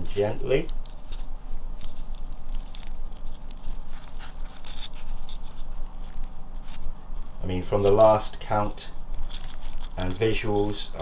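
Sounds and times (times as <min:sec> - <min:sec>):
substrate and leaves falling: 0:00.0 - 0:08.2
steady low hum: 0:00.0 - 0:11.0.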